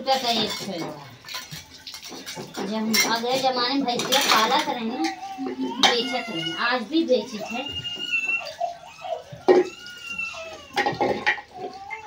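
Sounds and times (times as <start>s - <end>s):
water splashing and running: 0.0s - 12.0s.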